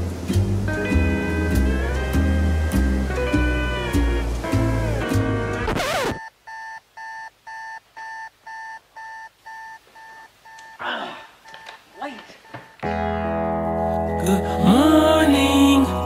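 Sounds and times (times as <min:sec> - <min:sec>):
music with rising sweep: 0:00.0 - 0:06.2
electronic alarm clock beeping: 0:06.2 - 0:10.8, 0:12.4 - 0:12.8.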